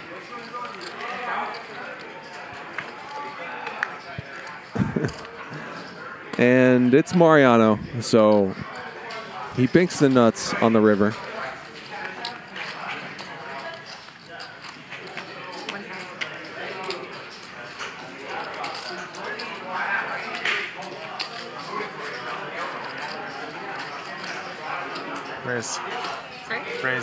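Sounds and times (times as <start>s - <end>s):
quiet indistinct talk: 8.5s - 27.0s.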